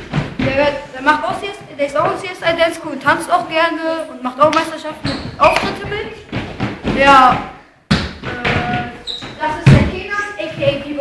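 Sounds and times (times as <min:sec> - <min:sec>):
loud thump: 0:05.0 - 0:10.1.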